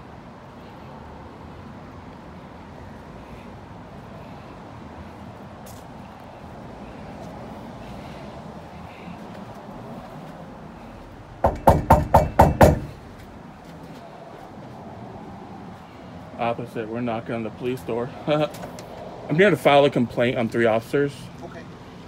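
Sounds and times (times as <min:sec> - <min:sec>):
distant road traffic hum: 0:00.0 - 0:22.0.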